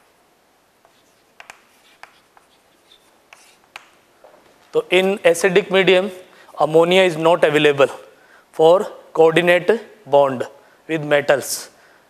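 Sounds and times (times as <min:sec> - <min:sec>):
chalk tapping and scratching: 0:00.8 - 0:04.0.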